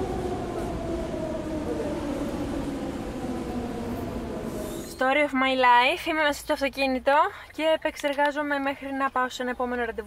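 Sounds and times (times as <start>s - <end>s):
train whine falling in pitch: 0.0s - 5.1s
train rumble: 0.0s - 5.4s.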